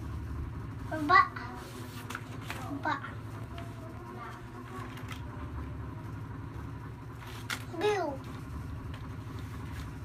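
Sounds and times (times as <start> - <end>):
low pulsing mechanical rumble: 0.0 - 10.0.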